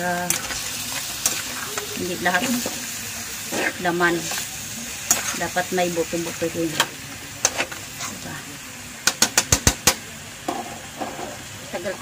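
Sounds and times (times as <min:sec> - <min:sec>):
meat sizzling in a wok: 0:00.0 - 0:12.0
spatula scraping a pan: 0:03.4 - 0:05.6.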